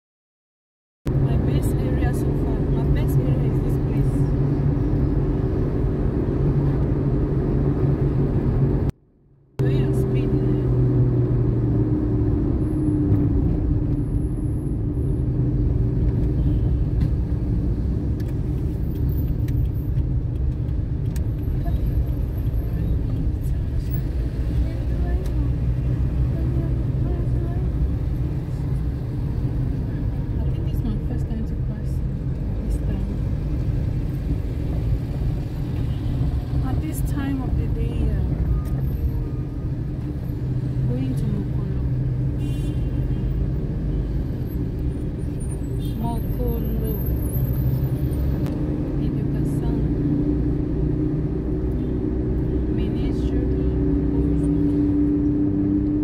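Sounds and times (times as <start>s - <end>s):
car engine and tyres rumbling: 1.1s - 56.0s.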